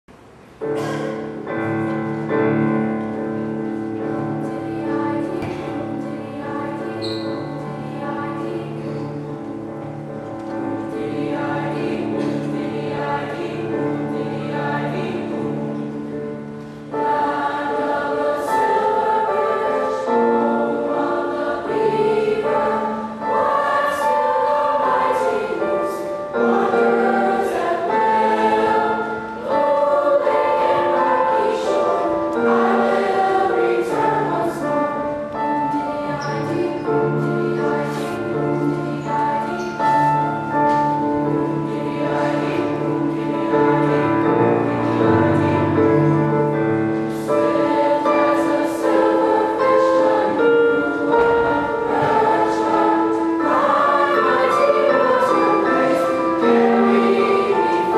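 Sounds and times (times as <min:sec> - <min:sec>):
choir singing: 0:00.6 - 0:57.9.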